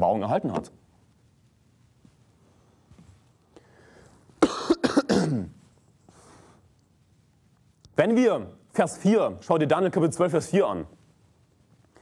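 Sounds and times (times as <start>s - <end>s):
soft breaths: 2.0s - 4.4s, 5.6s - 7.0s
man clearing throat: 4.4s - 5.6s
man coughing: 4.4s - 5.6s.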